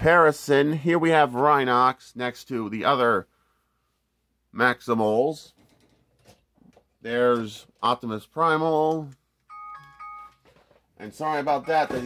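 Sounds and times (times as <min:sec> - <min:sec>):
timer beeping tones: 0:11.3 - 0:12.0.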